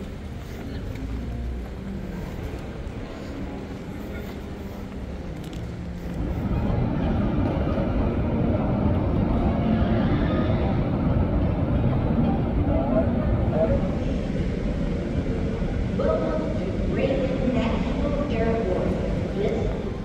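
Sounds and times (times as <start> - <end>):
low rumble of aircraft: 0.0 - 20.0.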